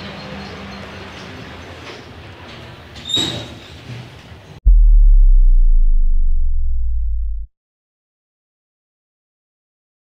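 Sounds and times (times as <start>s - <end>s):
low steady humming tone: 4.7s - 7.5s.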